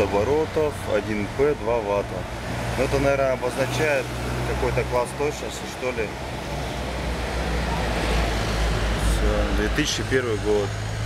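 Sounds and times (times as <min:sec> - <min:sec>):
passing motor vehicle rumble: 0:00.0 - 0:11.0.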